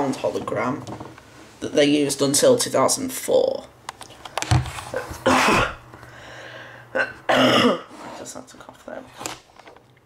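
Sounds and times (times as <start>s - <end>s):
man coughing: 5.0s - 5.8s, 7.0s - 7.9s.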